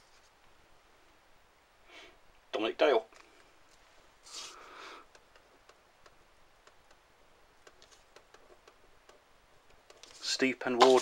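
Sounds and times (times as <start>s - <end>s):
paper rustling: 7.7s - 8.2s, 9.9s - 11.0s.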